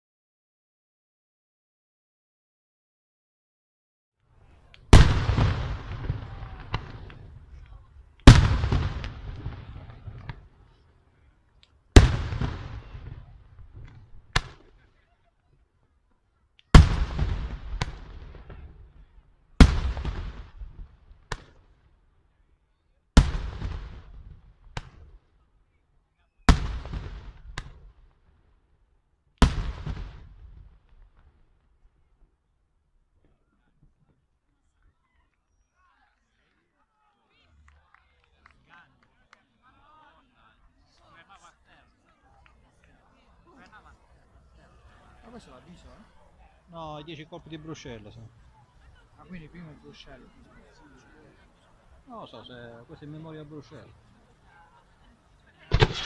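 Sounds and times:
rolling echo of bangs: 0:04.9 - 0:07.2, 0:08.3 - 0:10.4
firework shells bursting: 0:55.7 - 0:56.0.

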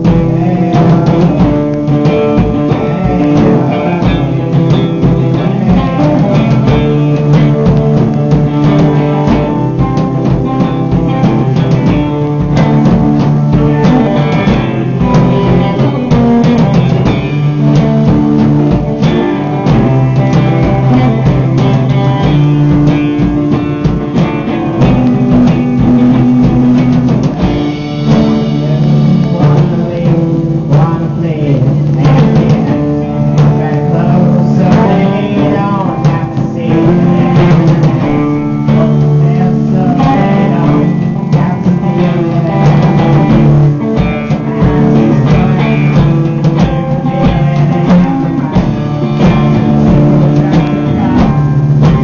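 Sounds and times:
drum kit beat: 0:00.0 - 0:52.0
live rock band playing: 0:00.0 - 0:52.0
strummed electric guitar: 0:00.0 - 0:52.0.

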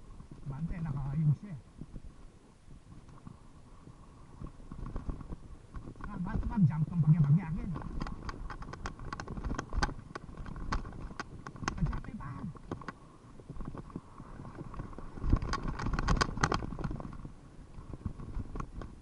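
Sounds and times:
tyre rumbling on dirt trail: 0:00.0 - 0:19.0
bike clicks and rattles: 0:04.3 - 0:19.0.

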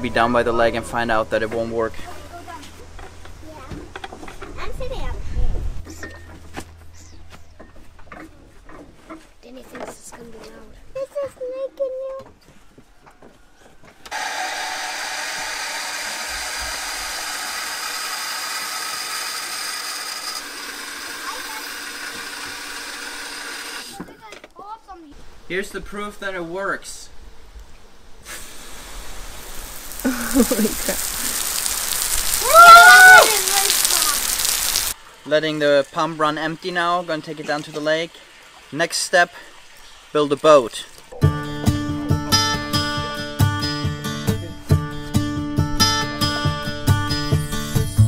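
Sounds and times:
electric pump whining: 0:14.1 - 0:23.9.

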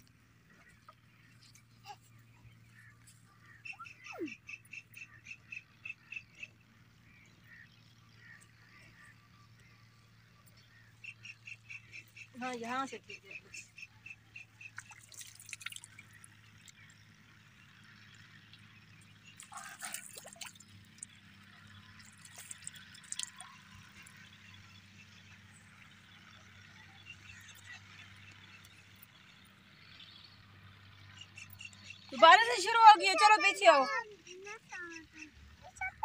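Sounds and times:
water splashing and dripping: 0:14.7 - 0:16.8, 0:19.4 - 0:24.1.

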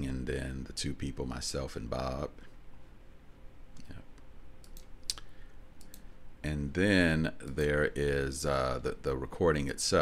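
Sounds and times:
computer mouse clicks: 0:03.8 - 0:06.1.

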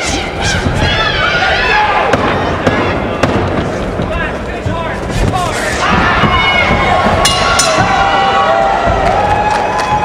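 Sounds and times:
crowd shouting and yelling: 0:00.0 - 0:10.0.

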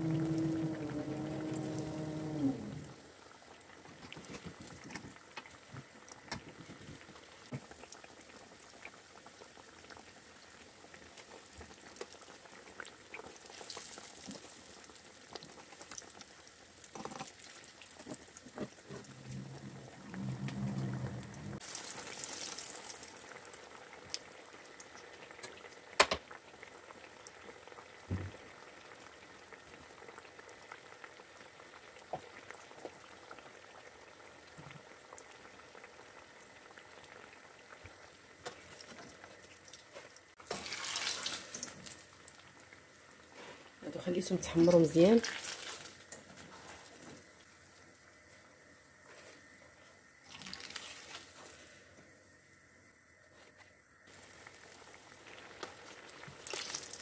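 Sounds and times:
patties deep-frying in oil: 0:00.0 - 0:57.0.

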